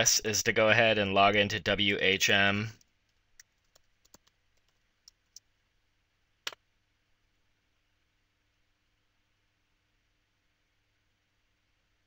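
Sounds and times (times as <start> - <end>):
computer keyboard keys clicking: 3.4 - 5.4.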